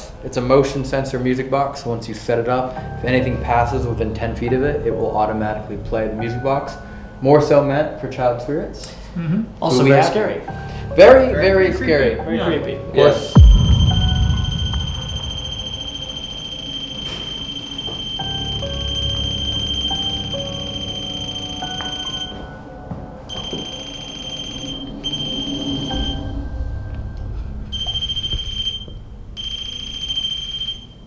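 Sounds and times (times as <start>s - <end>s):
high electronic alarm tone: 13.4s - 22.6s, 23.3s - 26.6s, 27.7s - 31.0s.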